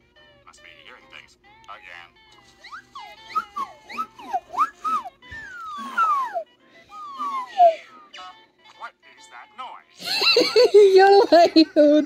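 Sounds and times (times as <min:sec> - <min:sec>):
slide whistles gliding: 0:02.6 - 0:07.7.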